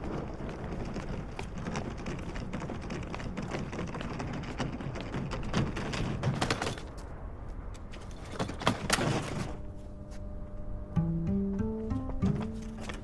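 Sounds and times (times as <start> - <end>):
wheels clicking over joints: 0.0 - 9.7, 11.8 - 13.0
suitcase wheels rumbling on paving: 0.0 - 9.8, 11.8 - 13.0.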